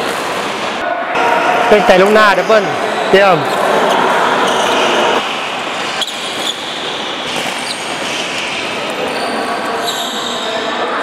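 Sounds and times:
racket striking shuttlecock: 0.0 - 0.6, 5.8 - 9.0
badminton rally: 0.0 - 11.0.

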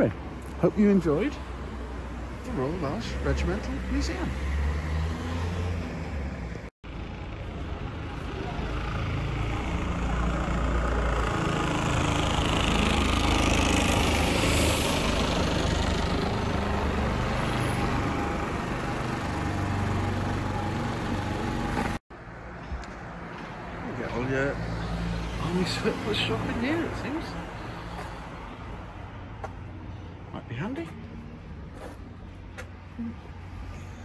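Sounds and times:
vehicle engine and tyre noise: 0.0 - 34.0.

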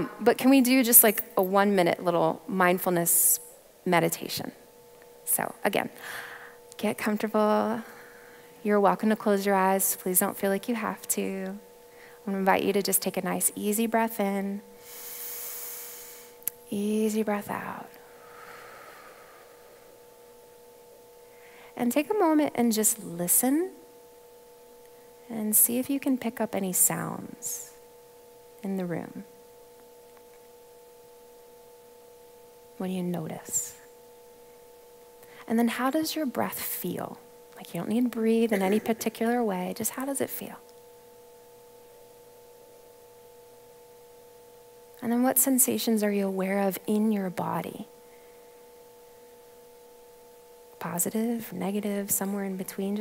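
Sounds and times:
faint steady hum: 0.0 - 53.0
low room hiss: 0.0 - 53.0.

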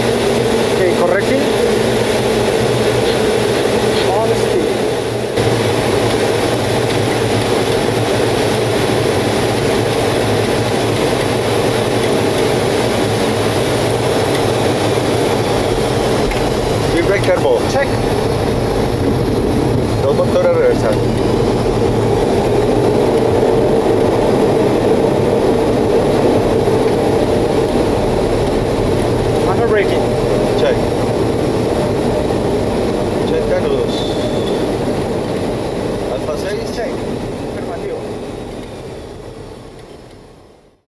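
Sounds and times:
aircraft engine and airflow noise: 0.0 - 40.9.

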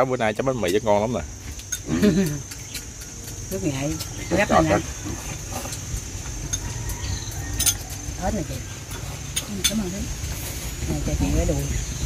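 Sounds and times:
insects droning: 0.0 - 12.0
light clinks on ceramic bowls: 1.6 - 10.0.

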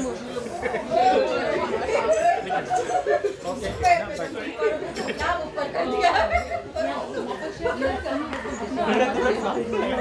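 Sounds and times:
overlapping conversational chatter: 0.0 - 10.0.

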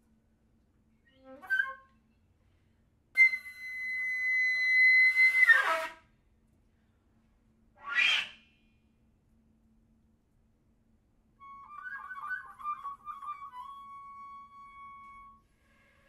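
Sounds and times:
flute playing: 3.2 - 6.0, 11.4 - 15.5.

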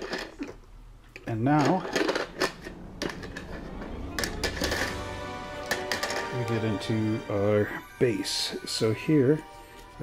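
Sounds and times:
plastic parts and bags rustling: 0.0 - 3.6.

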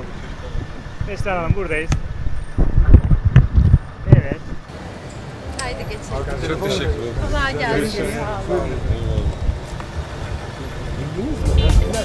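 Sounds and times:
rumbling buffeting on microphone: 0.0 - 4.7.

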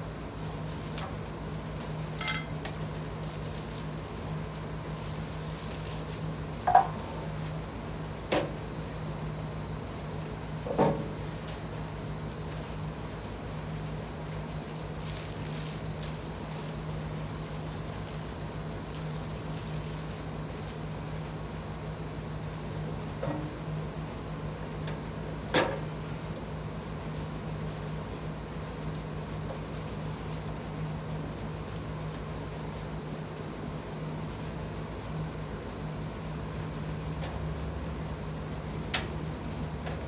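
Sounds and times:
bag of bolts rustling: 4.8 - 6.4, 14.8 - 20.8.

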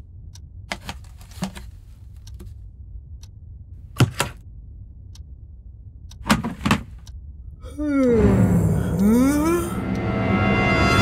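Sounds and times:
man crying out: 7.6 - 9.8.

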